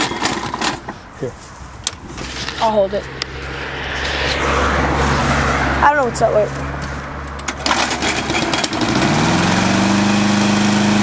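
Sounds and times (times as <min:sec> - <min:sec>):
lawn mower engine pull-start cranking: 0:00.0 - 0:00.9, 0:07.4 - 0:11.0.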